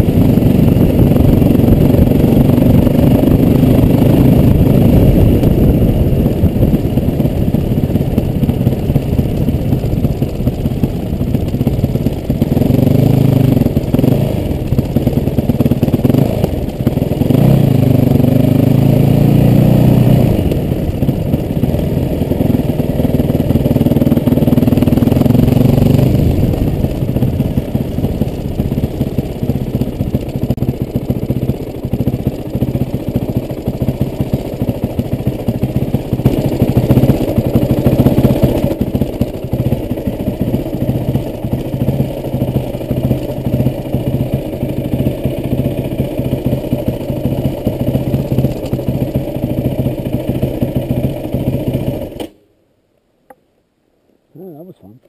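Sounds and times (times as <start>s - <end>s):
motorcycle engine running: 0.0s - 52.4s.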